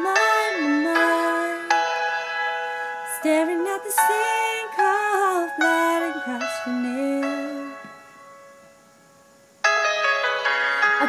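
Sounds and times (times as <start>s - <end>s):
piano chords: 0.0s - 11.0s.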